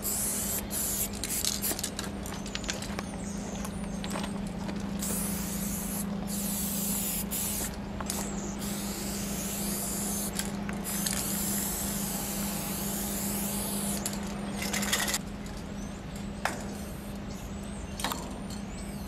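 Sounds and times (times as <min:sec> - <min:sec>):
spray paint can hissing: 0:00.0 - 0:01.9, 0:05.0 - 0:14.1.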